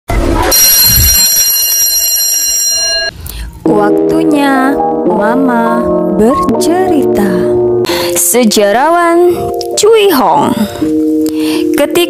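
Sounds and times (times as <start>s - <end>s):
bright ringing chime: 0.5s - 3.2s.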